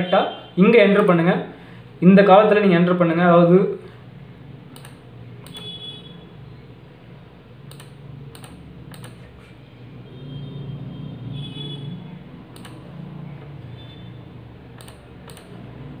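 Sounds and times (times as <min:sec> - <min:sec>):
computer mouse clicking: 0:04.7 - 0:05.7, 0:07.7 - 0:09.3, 0:12.5 - 0:12.9, 0:14.7 - 0:15.6.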